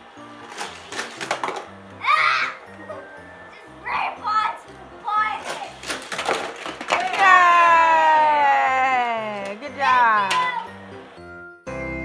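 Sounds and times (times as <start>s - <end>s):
plastic toy pieces clicking: 0.5s - 1.7s, 5.4s - 7.3s
child crying: 2.0s - 3.0s.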